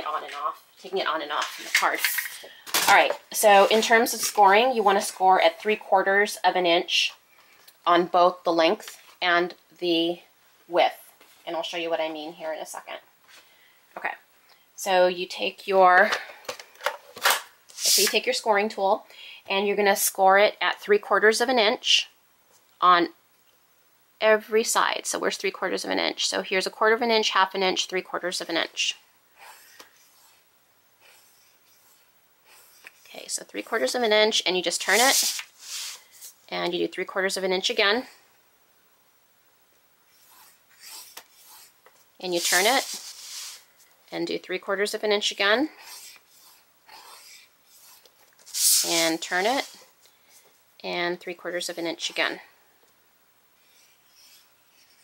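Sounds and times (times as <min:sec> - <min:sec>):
paper scraping on scoring board: 0:34.8 - 0:36.0, 0:40.1 - 0:43.6, 0:45.8 - 0:49.8, 0:53.6 - 0:55.0.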